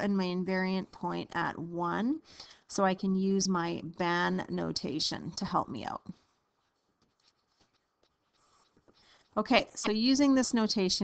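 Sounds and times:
stylus scratching on screen: 3.6s - 11.0s.

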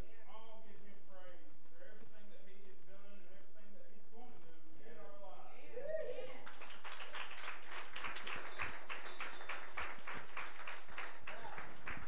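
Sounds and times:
hand clapping: 6.4s - 12.0s.

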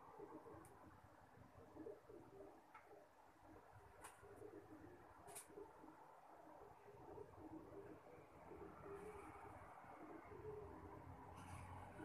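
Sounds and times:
faint bird cooing: 0.0s - 12.0s.

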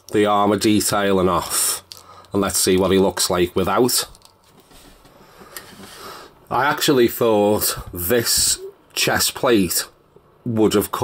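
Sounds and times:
handling plastic action figure: 1.8s - 6.0s.

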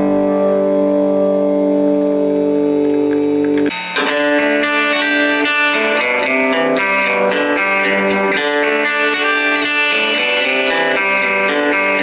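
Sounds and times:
electric guitar chord ringing: 0.0s - 12.0s.

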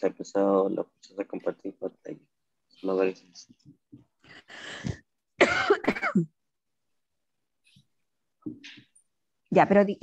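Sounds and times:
person coughing: 5.4s - 6.3s.

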